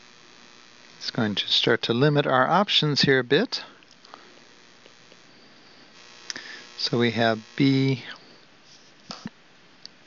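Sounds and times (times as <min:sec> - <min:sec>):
faint electrical hum: 0:00.0 - 0:10.0
man speaking: 0:01.0 - 0:03.8, 0:06.7 - 0:08.3.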